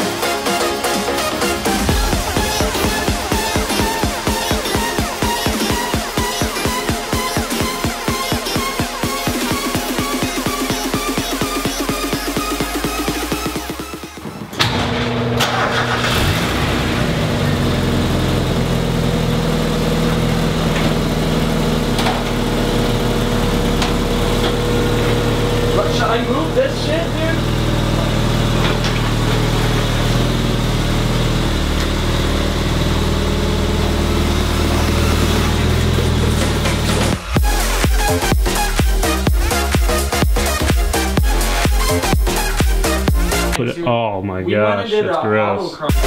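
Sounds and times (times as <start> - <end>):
car engine starting and idling: 0.0 - 43.6.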